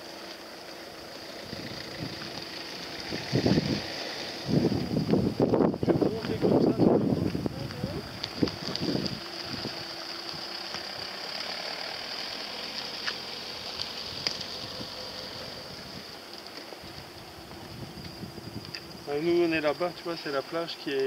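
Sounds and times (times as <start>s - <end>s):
faint engine hum: 0.0s - 20.8s
crickets chirring: 0.0s - 21.0s.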